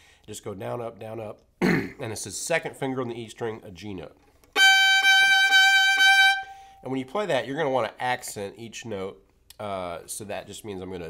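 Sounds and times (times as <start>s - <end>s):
fiddle bowing high note: 4.6s - 6.9s.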